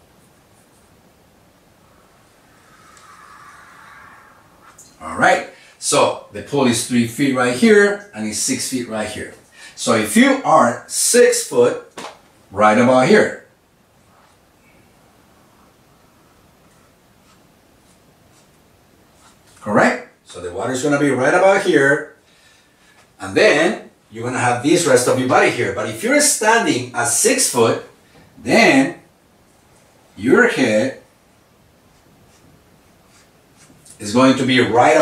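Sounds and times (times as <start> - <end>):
marker strokes on whiteboard: 0.1 - 1.1, 14.0 - 14.5, 16.5 - 19.8, 31.8 - 34.2.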